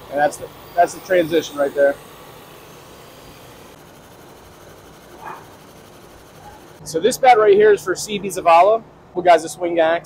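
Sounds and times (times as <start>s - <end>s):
wood lathe running: 0.0s - 6.8s.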